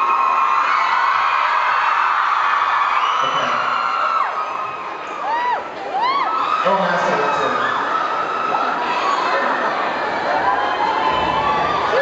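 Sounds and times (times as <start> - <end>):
whoops: 0.0 - 6.6
audience screaming and cheering: 0.0 - 12.0.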